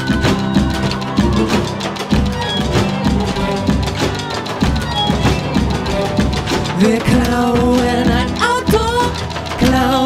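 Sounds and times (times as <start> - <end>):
bass: 0.0 - 10.0
drum kit beat: 0.0 - 10.0
person singing: 1.1 - 10.0.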